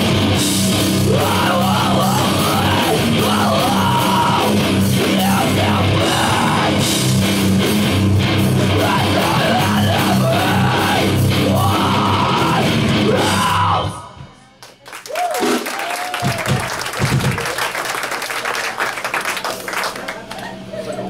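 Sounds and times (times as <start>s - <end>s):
punk band playing: 0.0s - 14.3s, 15.4s - 17.6s.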